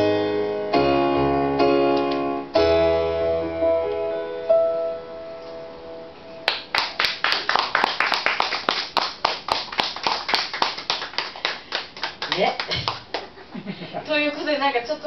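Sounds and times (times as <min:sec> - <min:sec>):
electric piano chord: 0:00.0 - 0:06.5
audience applauding: 0:06.5 - 0:13.4.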